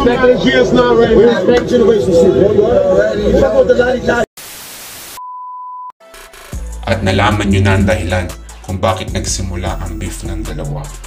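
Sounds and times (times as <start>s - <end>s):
static hiss: 4.4s - 5.2s
music with deep bass: 6.0s - 11.0s.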